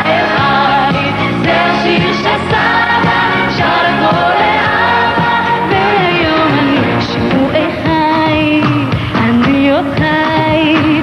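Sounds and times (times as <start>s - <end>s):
live pop band playing: 0.0s - 11.0s
voices singing with vibrato: 0.0s - 11.0s.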